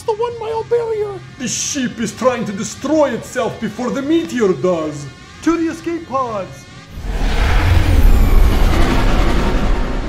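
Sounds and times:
deep rumble with hiss: 6.8 - 10.0.

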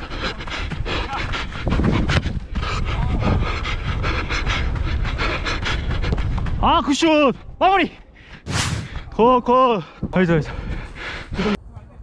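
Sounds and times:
heavy panting: 0.0 - 6.6, 10.4 - 11.6.

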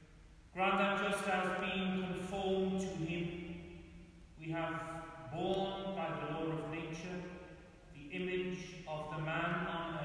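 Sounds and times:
man chanting a prayer: 0.6 - 3.6, 4.4 - 10.0.

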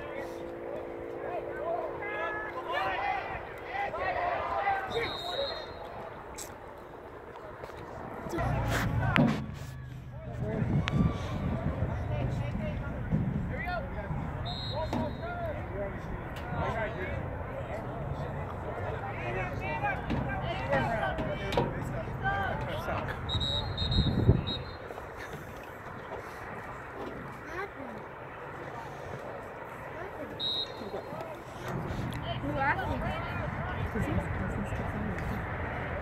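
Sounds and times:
players and spectators shouting: 1.1 - 6.3, 8.0 - 25.0.

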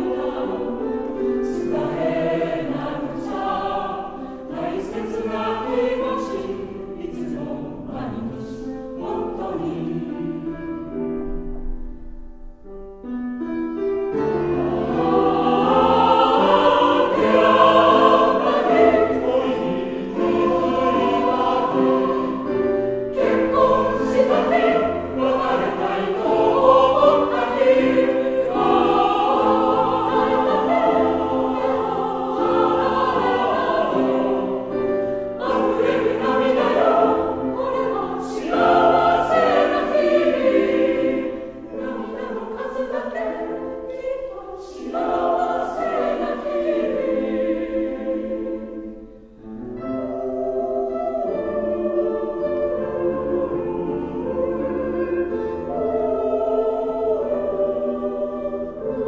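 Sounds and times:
mixed choir singing: 0.0 - 11.1, 14.1 - 59.0
piano accompaniment: 0.0 - 59.0.

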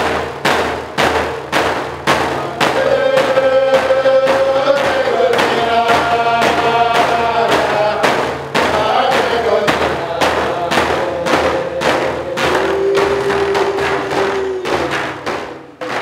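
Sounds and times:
frame drum beats: 0.0 - 16.0.

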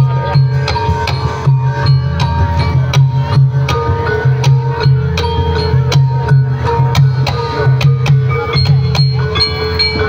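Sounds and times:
low drum beat: 0.0 - 10.0
ringing pitched tones: 0.0 - 10.0
sharp percussion strokes: 0.0 - 10.0.

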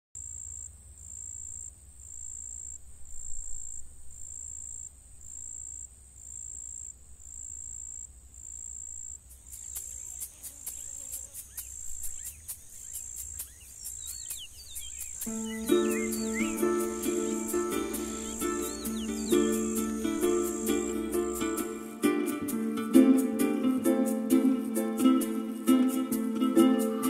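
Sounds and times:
insect trilling: 0.2 - 23.4
sharp ticks: 9.1 - 22.6
short chirping calls: 9.3 - 22.3.

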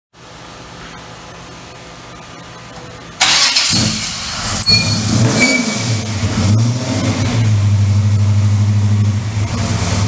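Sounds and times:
engine cranking: 3.2 - 5.4
engine catching: 3.2 - 7.7.

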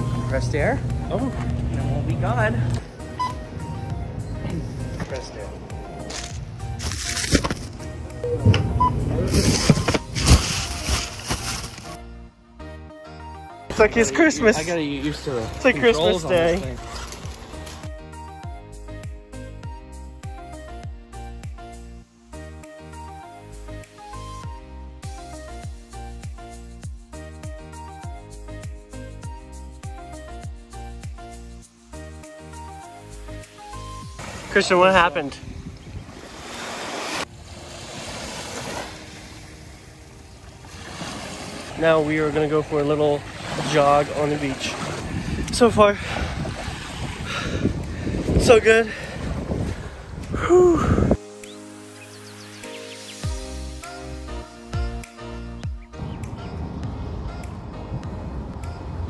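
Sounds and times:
background music: 0.0 - 35.7, 36.4 - 44.8, 47.3 - 59.0
plastic bag crinkling: 9.4 - 12.0
small waves washing on sand: 35.8 - 48.2.

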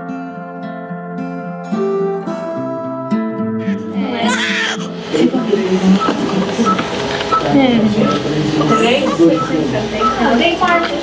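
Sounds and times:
newborn baby crying: 3.6 - 5.2, 8.6 - 9.7
short high beeps: 6.0 - 10.3.

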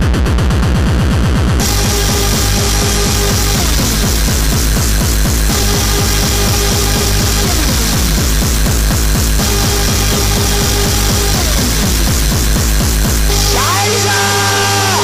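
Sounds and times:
fast kick drum: 0.0 - 13.8
harsh noise layer: 0.0 - 15.0.

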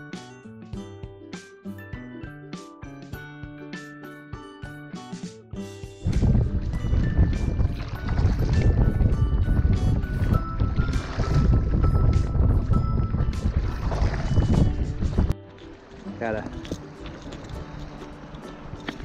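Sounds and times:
water washing around kayak: 6.0 - 9.2, 10.2 - 19.0
wind buffeting microphone: 6.0 - 15.4
faint background music: 9.4 - 19.0.

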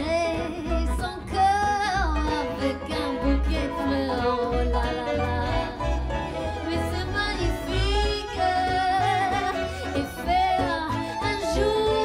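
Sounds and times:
jazz band accompaniment: 0.0 - 12.0
woman singing with vibrato: 0.0 - 12.0.

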